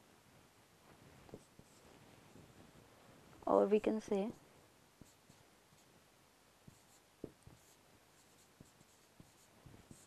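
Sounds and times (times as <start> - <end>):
marker writing on whiteboard: 1.3 - 1.9, 5.0 - 5.9, 6.6 - 10.0.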